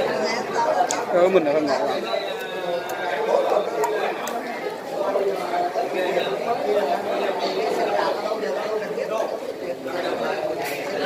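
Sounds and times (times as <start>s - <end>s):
background chatter of people: 0.0s - 11.0s.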